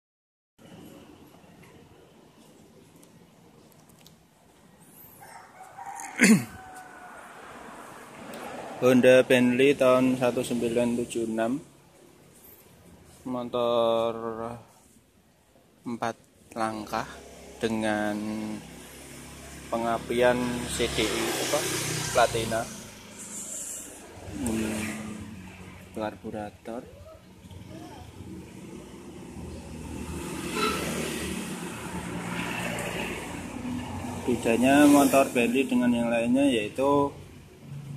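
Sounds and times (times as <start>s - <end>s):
distant rooster crowing: 5.0s - 8.6s.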